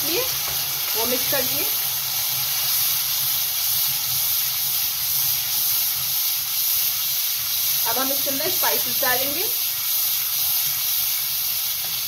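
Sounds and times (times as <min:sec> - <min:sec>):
tomato paste sizzling in oil: 0:00.0 - 0:12.0.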